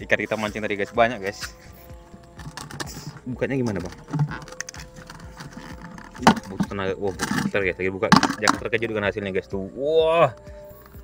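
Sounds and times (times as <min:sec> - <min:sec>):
plastic bucket lid clicking: 0:02.3 - 0:08.8.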